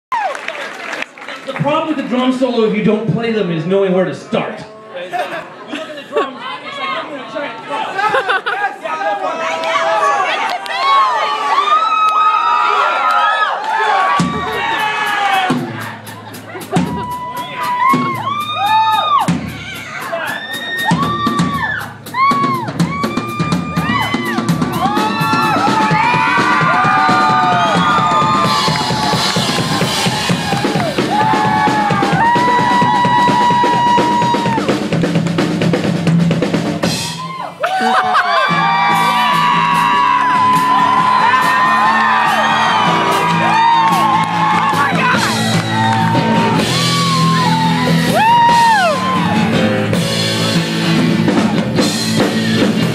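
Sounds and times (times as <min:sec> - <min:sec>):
crowd whooping: 0:00.0 - 0:01.3, 0:08.1 - 0:35.0, 0:36.8 - 0:52.8
rock band playing: 0:14.0 - 0:52.9
bass drum and snare hits: 0:14.2 - 0:19.7, 0:20.8 - 0:37.2.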